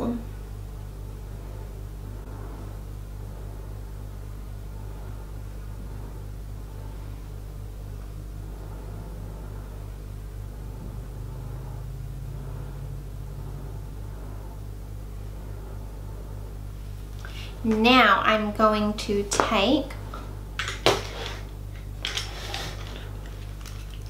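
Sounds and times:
higher hum tone: 0.0 - 24.0
steady low hum: 0.0 - 24.0.

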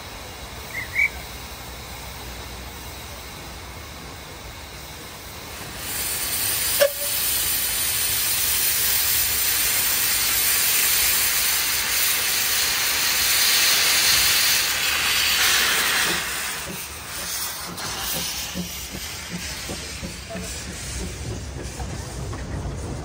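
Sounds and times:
steam locomotive hissing steam: 0.0 - 23.0.

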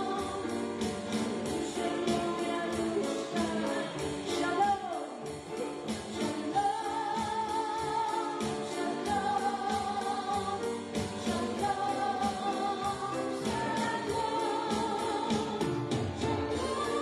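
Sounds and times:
drum kit beat: 0.0 - 17.0
piano: 0.0 - 17.0
woman singing into microphone: 0.0 - 17.0.

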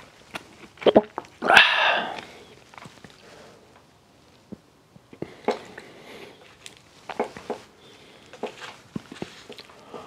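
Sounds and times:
pitched throat sound: 0.8 - 2.2
person swallowing: 0.8 - 2.4.

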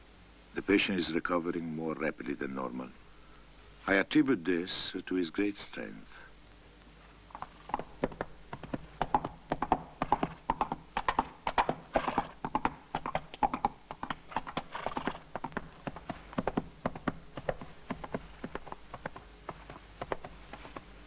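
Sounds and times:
horse hoofbeats galloping: 7.4 - 21.0.

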